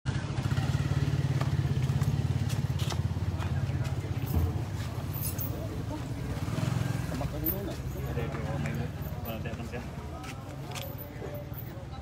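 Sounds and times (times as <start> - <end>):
motorcycle engine idling: 0.1 - 9.8
voices: 0.1 - 12.0.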